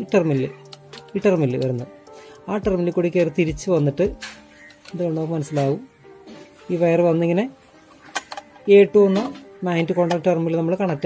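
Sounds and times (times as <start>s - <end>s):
person talking: 0.0s - 1.9s, 2.5s - 4.2s, 4.9s - 5.9s, 6.7s - 7.6s, 8.6s - 11.0s
quiet background music: 0.0s - 11.0s.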